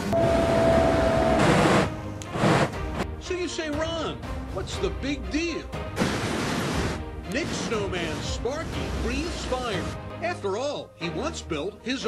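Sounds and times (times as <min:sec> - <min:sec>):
whistle-like tone: 0:00.0 - 0:01.5
flame bursts rushing: 0:01.4 - 0:03.0, 0:06.0 - 0:09.6.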